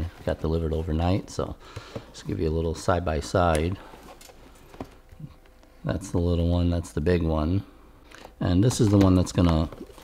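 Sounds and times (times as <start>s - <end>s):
man speaking: 0.0s - 3.9s, 5.2s - 7.8s, 8.4s - 9.9s.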